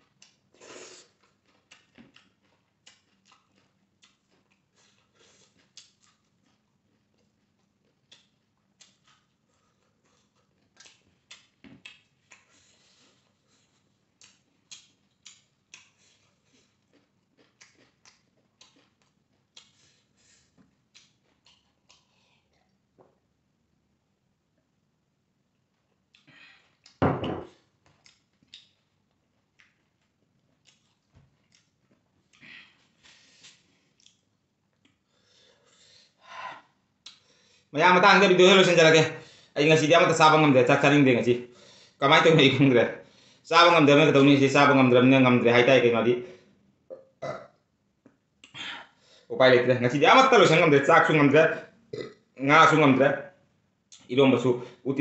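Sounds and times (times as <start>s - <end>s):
chewing and mouth smacks: 0.0s - 22.8s, 27.8s - 35.0s
man burping: 46.9s - 47.5s, 51.9s - 52.2s.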